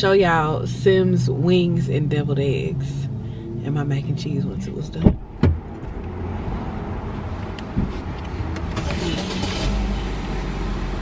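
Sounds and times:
car engine idling: 0.0 - 11.0
sharp knocks: 5.0 - 5.9.

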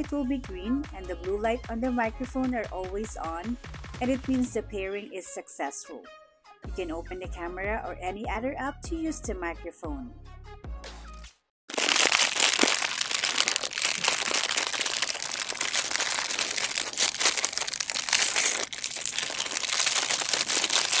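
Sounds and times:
crinkling on lavalier microphone: 11.7 - 21.0.

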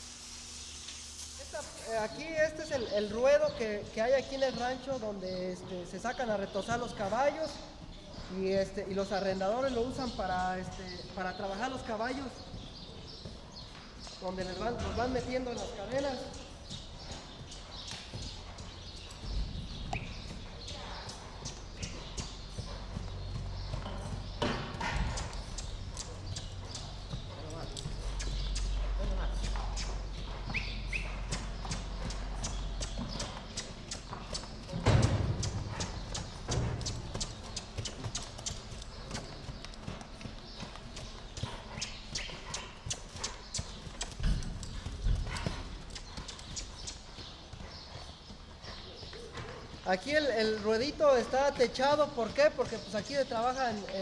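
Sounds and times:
horse hooves clattering: 1.8 - 54.0
heavy hoof thump: 14.3 - 46.9.

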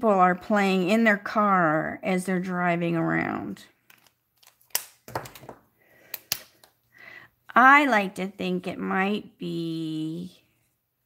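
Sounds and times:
markers set down on table: 4.7 - 5.6.

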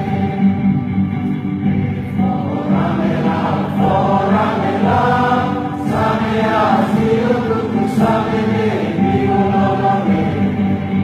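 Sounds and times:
group singing held notes: 0.0 - 11.0.

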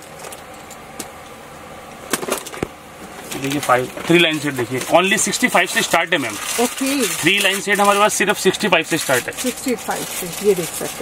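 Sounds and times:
person talking: 3.4 - 11.0.

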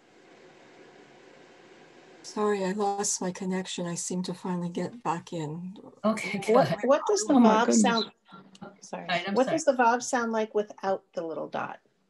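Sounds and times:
open microphone hiss: 0.0 - 3.6, 4.2 - 10.4.

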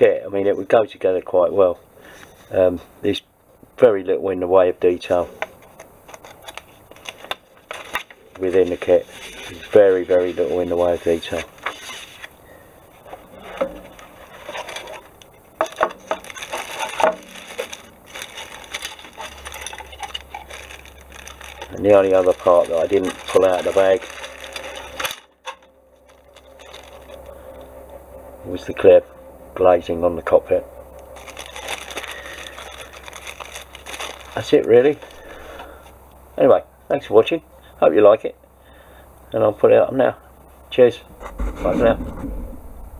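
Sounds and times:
plastic bag crinkling: 5.1 - 27.8, 30.2 - 35.9
plastic parts clicking and rattling: 13.6 - 27.3.

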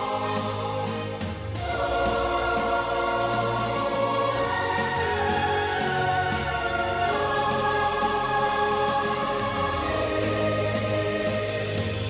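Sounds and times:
choir holding sustained chords: 0.0 - 12.0.

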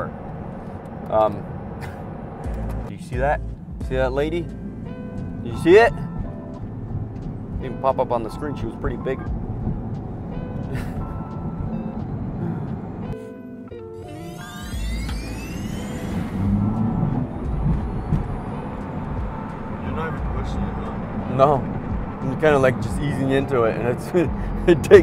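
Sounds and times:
road and wind noise: 0.0 - 13.2, 14.4 - 25.0
electric motor whine rising: 14.0 - 19.4.

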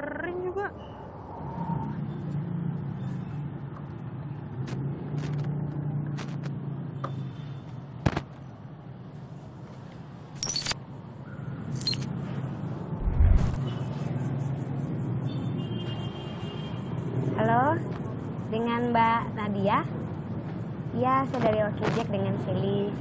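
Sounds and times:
sharp clicks: 11.7 - 12.1
low thump: 13.0 - 13.6.

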